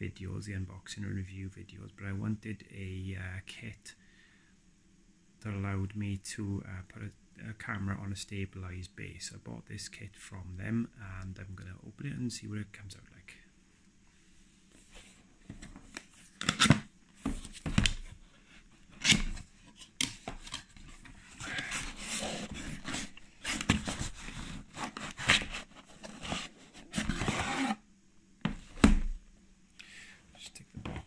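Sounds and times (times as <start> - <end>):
cardboard box scraping and rustling: 20.9 - 27.8.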